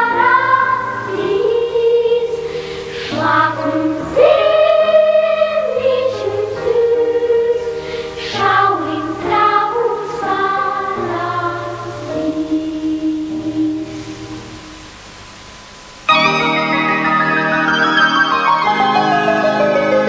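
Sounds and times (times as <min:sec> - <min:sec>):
children's choir singing: 0:00.0 - 0:14.2
organ-like chords: 0:13.2 - 0:20.0
loud keyboard chords: 0:16.1 - 0:20.0.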